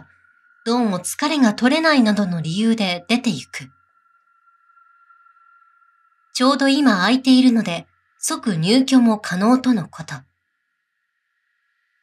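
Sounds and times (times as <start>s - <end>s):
faint steady high tone: 0.0s - 12.0s.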